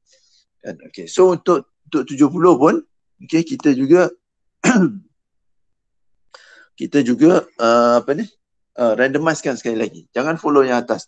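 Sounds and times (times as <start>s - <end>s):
person clearing throat: 4.6s - 5.1s.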